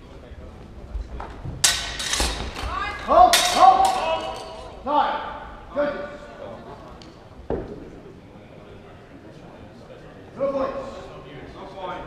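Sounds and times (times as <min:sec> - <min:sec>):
steel swords clashing: 0:01.6 - 0:04.8
people shouting: 0:02.6 - 0:05.3.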